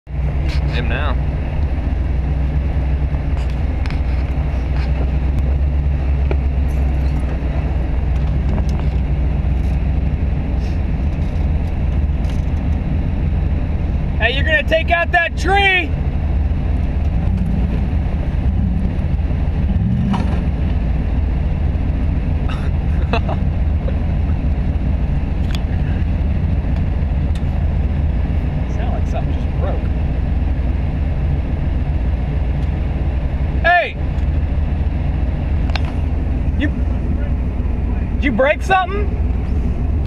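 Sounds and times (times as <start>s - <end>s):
engine idling: 0.0s - 40.0s.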